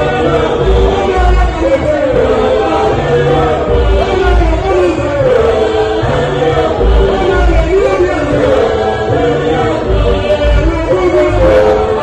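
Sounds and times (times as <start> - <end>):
deep bass notes: 0.0 - 12.0
mixed choir singing gospel: 0.0 - 12.0.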